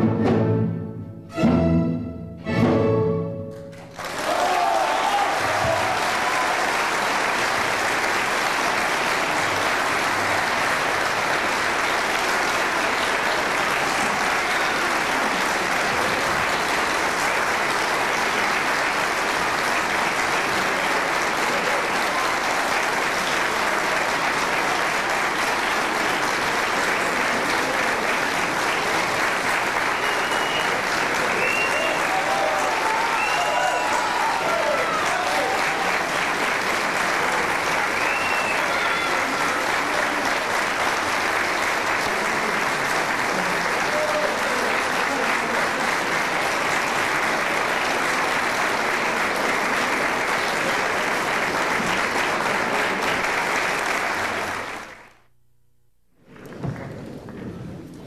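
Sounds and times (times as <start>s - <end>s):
audience clapping: 3.5s - 58.0s.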